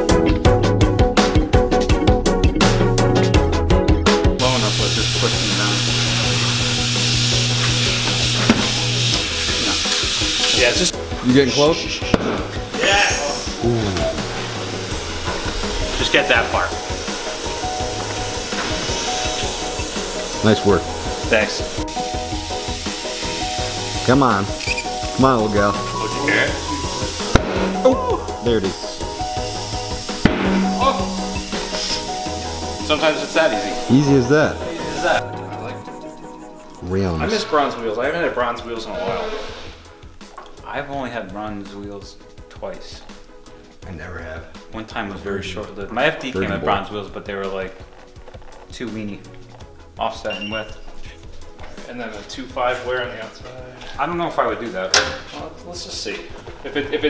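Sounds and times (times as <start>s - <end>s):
background music: 0.0s - 57.0s
steady hiss: 4.4s - 35.2s
motor hum: 4.7s - 9.3s
sharp pop of tire bead: 12.1s - 12.5s, 30.2s - 31.0s.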